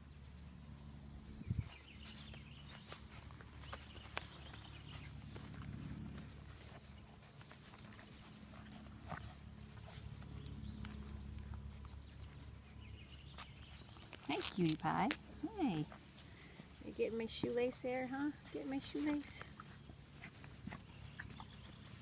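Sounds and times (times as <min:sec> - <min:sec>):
low steady hum: 0:00.0 - 0:22.0
rustles: 0:00.0 - 0:22.0.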